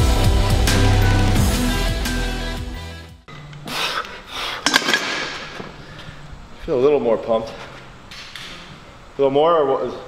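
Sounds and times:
heavy music: 0.0 - 3.3.

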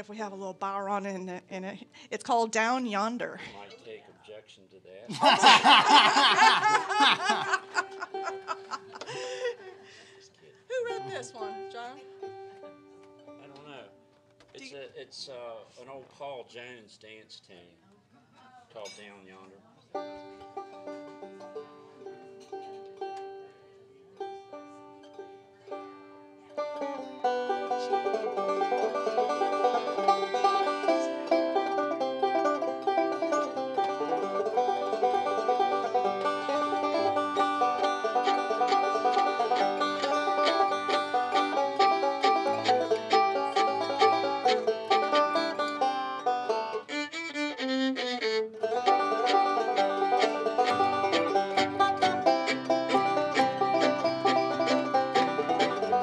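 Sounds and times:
banjo: 0.0 - 3.9, 5.0 - 9.6, 10.7 - 13.9, 19.9 - 56.0
acoustic guitar: 5.4 - 14.8, 20.0 - 56.0
fiddle: 19.9 - 56.0.

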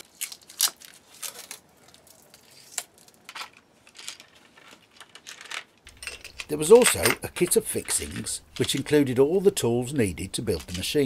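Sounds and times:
small parts clicking and tapping: 3.3 - 9.0.

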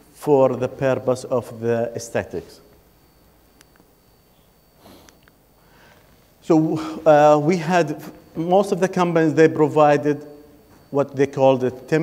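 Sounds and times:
person sniffing: 4.8 - 6.1.

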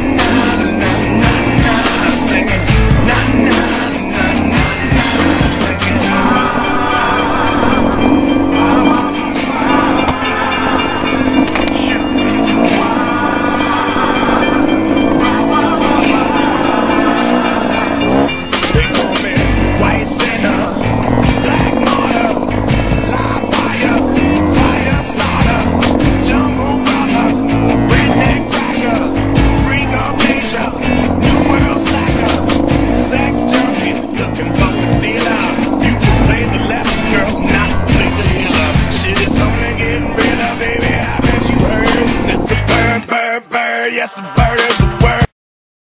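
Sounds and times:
motorcycle engine revving: 0.0 - 43.0
music with singing: 0.0 - 45.3.

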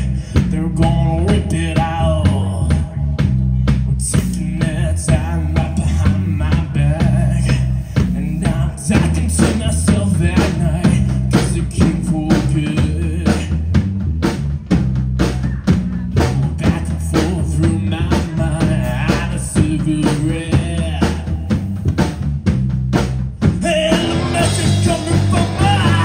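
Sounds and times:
man singing: 0.0 - 13.8, 15.2 - 21.6, 23.4 - 26.0
drum kit beat: 0.0 - 26.0
electric bass: 0.0 - 26.0
electric guitar: 23.5 - 26.0.

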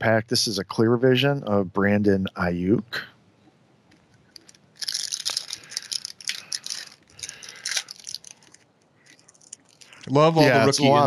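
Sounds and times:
foil wrapper crinkling and tearing: 4.4 - 10.0.

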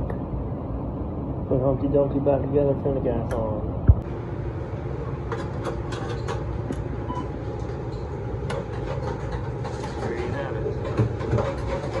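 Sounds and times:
broiler low rumble: 0.0 - 5.2.

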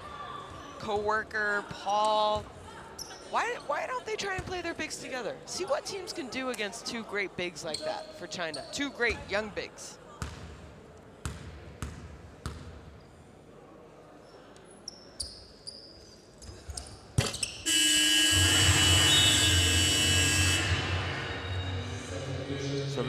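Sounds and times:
crowd cheering: 18.2 - 21.9.

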